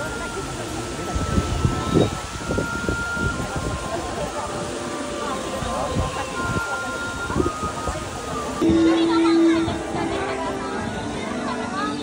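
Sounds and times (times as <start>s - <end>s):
wind buffeting microphone: 0.0s - 11.2s
outdoor background hiss: 0.0s - 12.0s.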